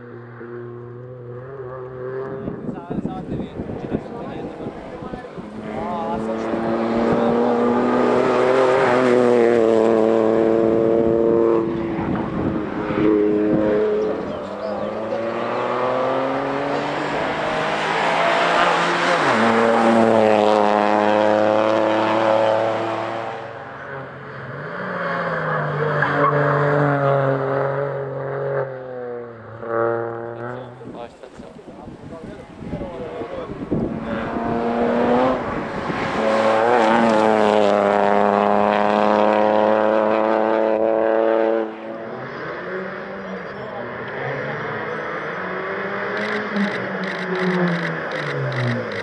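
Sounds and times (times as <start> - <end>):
rally car engines revving: 0.0 - 49.0.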